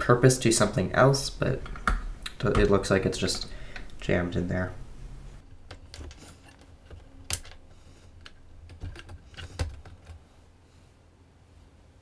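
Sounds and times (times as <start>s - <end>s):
memory stick rattling in slot: 5.5s - 10.2s.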